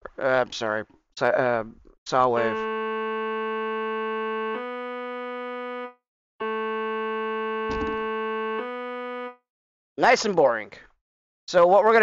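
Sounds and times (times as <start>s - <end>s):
sawtooth synthesizer tone: 2.2s - 9.4s
low thump: 7.7s - 8.0s.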